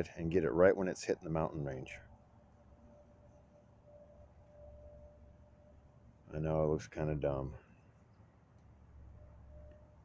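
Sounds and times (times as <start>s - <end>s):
thin steady tone: 0.0s - 10.0s.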